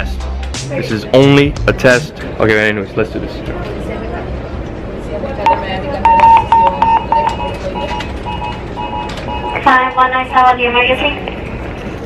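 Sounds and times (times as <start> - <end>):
rapid electronic alarm beeps: 5.5 - 9.8.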